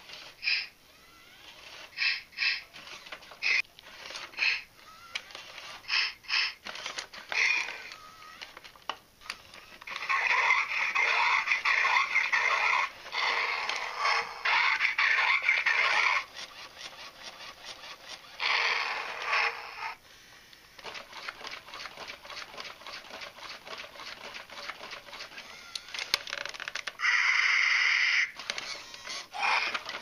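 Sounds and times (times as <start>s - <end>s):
toy electronic growls and screeches: 0.0s - 8.6s, 9.2s - 20.0s, 21.0s - 30.0s
toy motor clicking: 0.0s - 20.0s, 20.7s - 30.0s.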